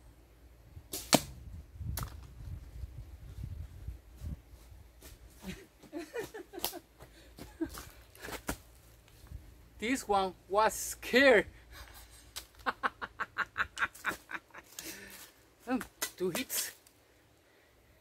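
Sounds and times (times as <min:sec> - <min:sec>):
arrow striking: 0:00.9 - 0:02.2.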